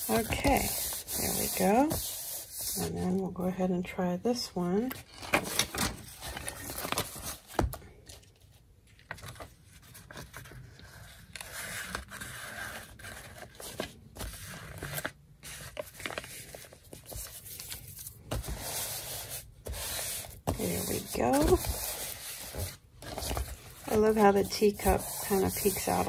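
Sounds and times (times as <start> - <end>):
paper scraping and rustling: 0.0 - 3.2, 5.0 - 26.0.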